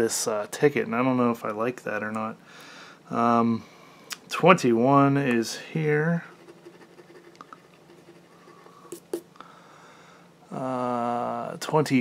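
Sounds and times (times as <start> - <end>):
coin scratching lottery ticket: 6.3 - 9.2.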